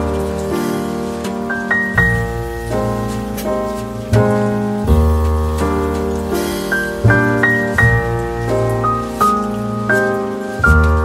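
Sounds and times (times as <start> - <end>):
piano music: 0.0 - 11.0.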